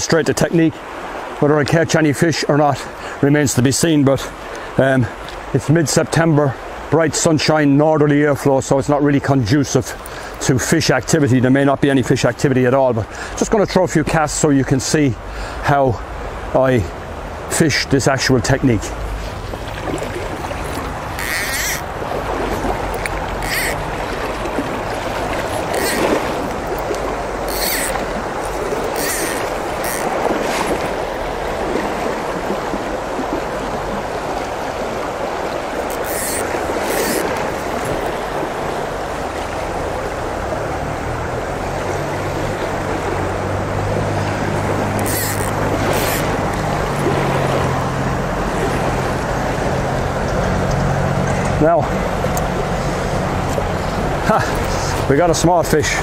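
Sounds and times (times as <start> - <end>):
river water rushing: 0.0 - 56.0.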